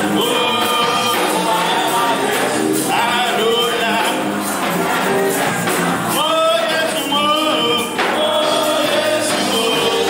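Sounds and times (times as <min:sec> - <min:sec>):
backing music: 0:00.0 - 0:10.0
men singing gospel: 0:00.0 - 0:10.0.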